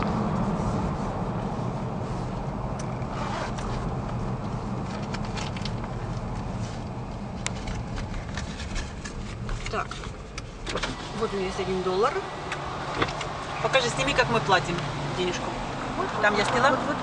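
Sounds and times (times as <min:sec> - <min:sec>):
car road and engine rumble: 0:00.0 - 0:17.0
clicks and rustles in cabin: 0:04.8 - 0:11.0.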